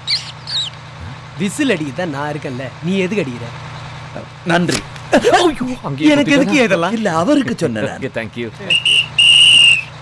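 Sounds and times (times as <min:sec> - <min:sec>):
whistle blasts: 0:08.7 - 0:10.0.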